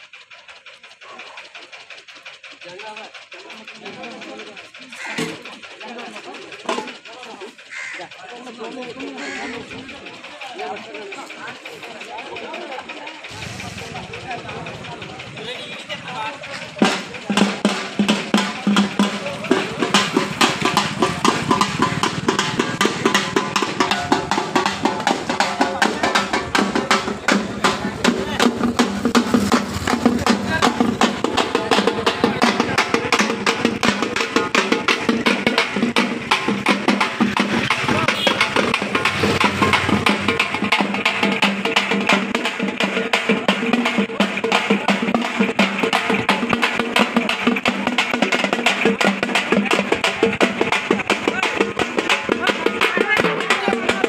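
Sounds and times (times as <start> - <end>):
frame drums beaten by hand: 0.0 - 54.0.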